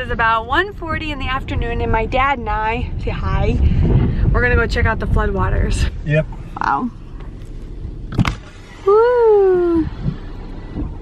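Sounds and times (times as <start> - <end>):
high-pitched vocal ooh: 8.8 - 10.0.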